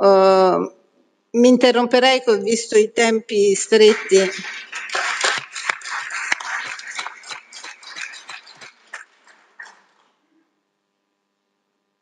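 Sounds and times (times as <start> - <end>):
applause: 3.6 - 10.0.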